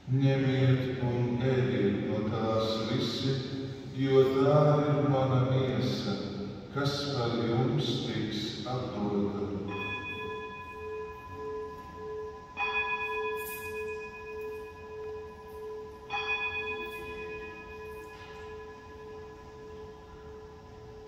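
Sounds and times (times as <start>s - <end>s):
altar bell ringing: 8.8s - 21.0s.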